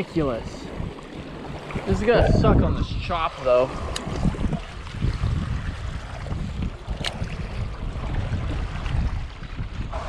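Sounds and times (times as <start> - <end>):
water lapping at shore: 0.0 - 10.0
wind buffeting microphone: 0.0 - 10.0.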